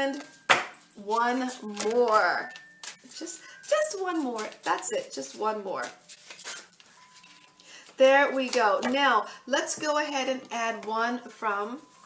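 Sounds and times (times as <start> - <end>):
cards being shuffled: 4.6 - 6.9.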